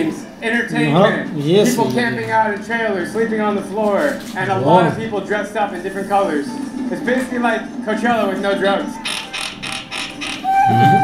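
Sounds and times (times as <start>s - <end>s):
rapid rasping clatter: 9.0s - 10.7s
toy pipe whistle-like note: 10.4s - 11.0s.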